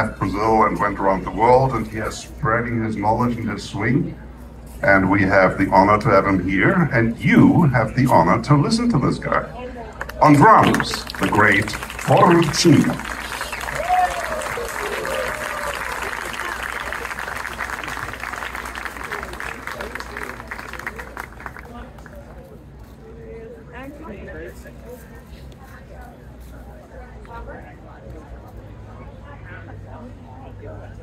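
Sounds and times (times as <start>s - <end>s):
crowd chatter: 0.0s - 31.0s
audience applauding: 10.3s - 21.8s.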